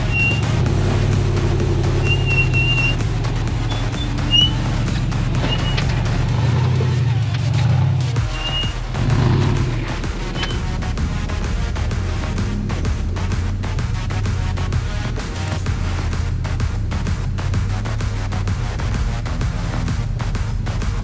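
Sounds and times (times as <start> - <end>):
short high squeaks: 0.0 - 0.6, 2.0 - 3.0, 3.6 - 6.1, 8.2 - 8.8, 10.4 - 10.6
background music: 0.0 - 21.0
buggy engine running under load: 0.0 - 21.0.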